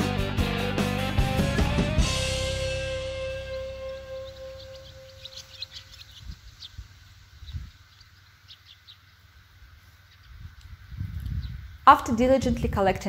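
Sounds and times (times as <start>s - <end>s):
background music: 0.0s - 5.8s
birds chirping: 0.0s - 13.0s.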